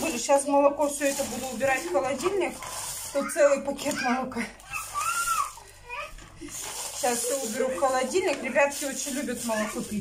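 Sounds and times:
child calling out: 3.2s - 6.2s.

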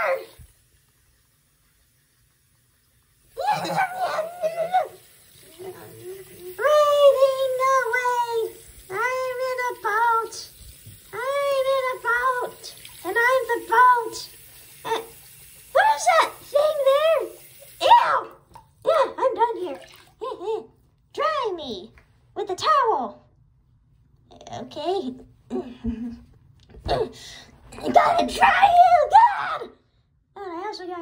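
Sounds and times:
tap water running into sink: 0.0s - 18.8s, 19.4s - 20.2s.

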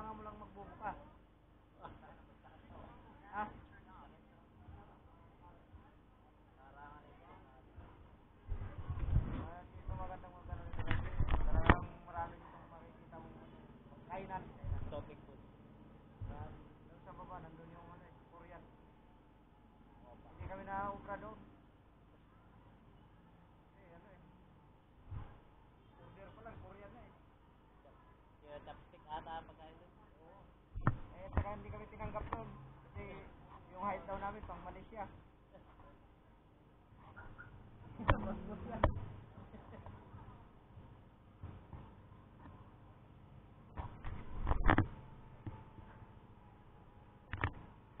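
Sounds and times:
people talking: 0.0s - 15.5s, 26.0s - 36.0s, 38.0s - 40.6s
voices chattering: 0.0s - 43.8s.

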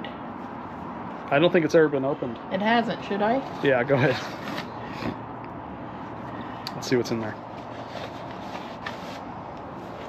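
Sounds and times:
paper envelope rubbing and scraping: 3.5s - 5.2s, 7.5s - 10.0s
paper rustles: 7.5s - 10.0s.

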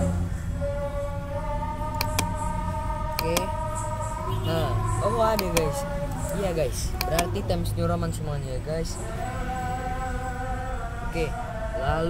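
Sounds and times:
steady background hum: 0.0s - 12.0s
computer mouse clicks: 2.0s - 2.3s, 3.1s - 3.5s, 5.3s - 5.7s.

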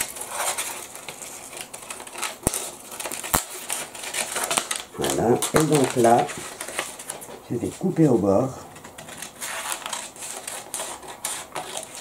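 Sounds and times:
scissors snipping paper: 0.0s - 7.2s, 9.1s - 12.0s.

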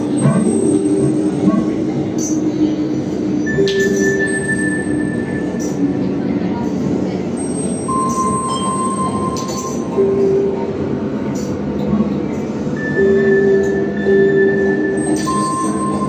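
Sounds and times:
held pure electronic tones: 12.8s - 16.0s.

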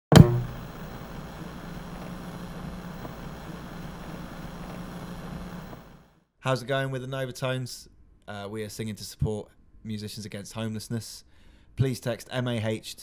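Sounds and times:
television switching on thump: 0.1s - 6.0s
television humming with hiss: 0.1s - 6.1s.

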